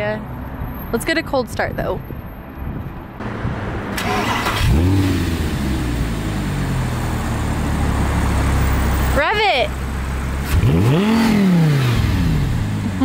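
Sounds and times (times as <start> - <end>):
car engine revving and idling: 3.2 - 13.0.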